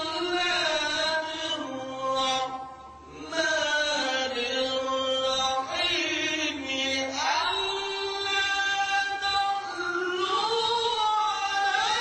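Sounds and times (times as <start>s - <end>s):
man reciting melodically: 0.0s - 12.0s.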